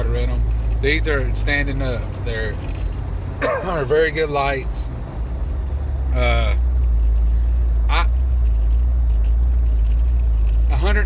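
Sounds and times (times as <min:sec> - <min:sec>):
car engine droning: 0:00.0 - 0:11.0.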